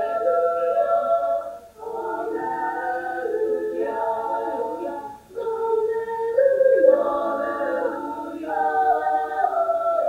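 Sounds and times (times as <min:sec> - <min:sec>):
chorus singing a held chord: 0:00.0 - 0:10.0.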